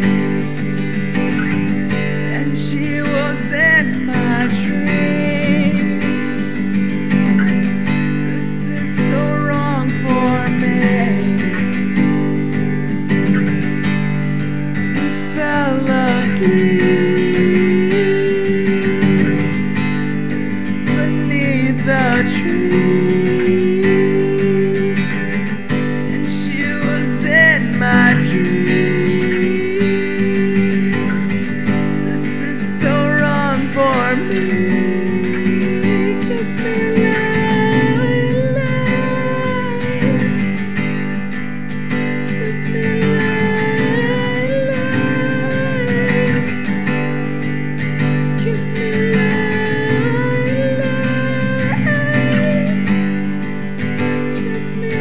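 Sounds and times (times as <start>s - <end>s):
wordless singing: 0.0s - 13.8s, 14.8s - 41.3s, 42.0s - 55.0s
acoustic guitar strumming chords: 0.0s - 55.0s.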